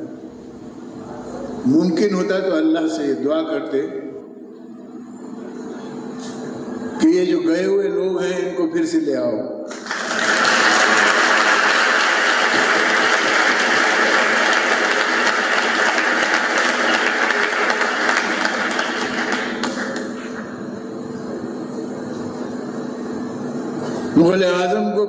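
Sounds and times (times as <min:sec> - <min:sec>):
audience applauding: 0:09.7 - 0:20.3.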